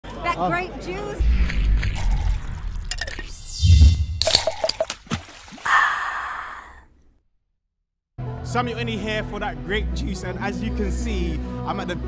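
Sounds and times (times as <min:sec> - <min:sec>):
wet splash hits: 0:04.2 - 0:05.7.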